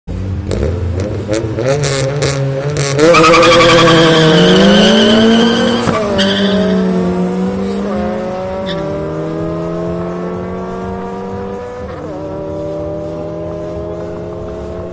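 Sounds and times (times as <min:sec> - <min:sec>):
car engines accelerating: 0:00.1 - 0:14.9.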